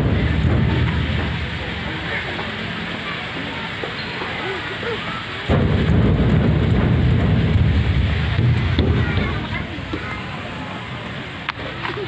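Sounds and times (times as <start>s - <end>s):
low rumbling on microphone: 0.0s - 3.8s, 5.4s - 11.4s.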